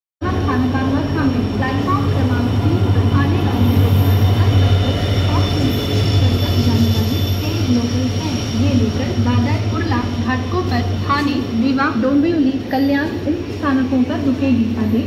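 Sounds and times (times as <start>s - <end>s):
diesel locomotive passing: 0.2s - 15.0s
train coaches rolling: 0.2s - 15.0s.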